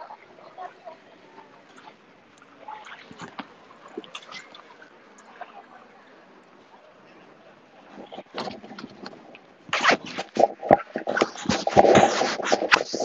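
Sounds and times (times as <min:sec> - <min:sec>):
microphone handling noise: 0:08.0 - 0:13.0.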